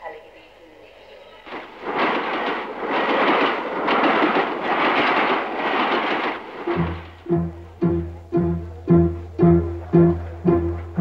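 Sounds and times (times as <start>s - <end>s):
dense rushing noise: 1.5s - 11.0s
plucked low strings: 6.8s - 11.0s.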